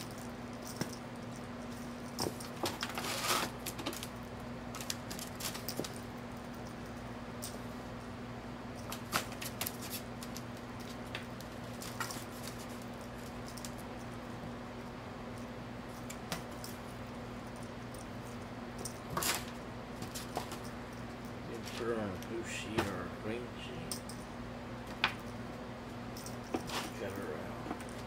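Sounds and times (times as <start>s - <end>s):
low steady hum: 0.0s - 28.0s.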